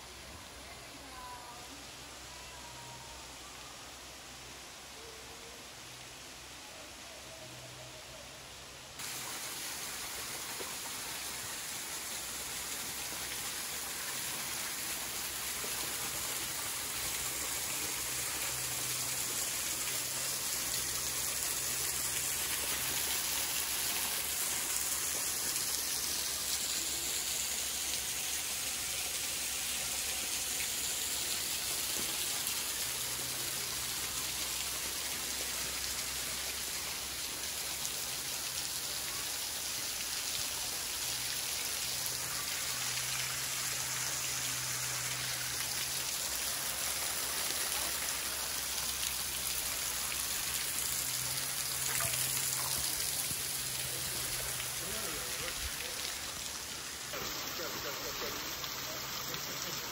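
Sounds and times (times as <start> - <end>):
water dripping onto rock and gravel: 39.9 - 59.8.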